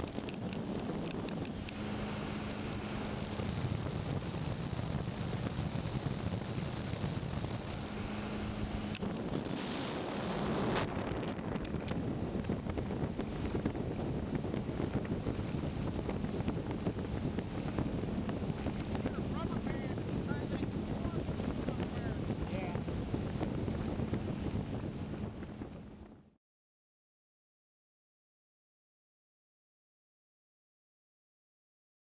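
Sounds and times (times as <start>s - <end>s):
motorboat running on choppy water: 0.0s - 26.4s
wind on microphone: 0.0s - 26.4s.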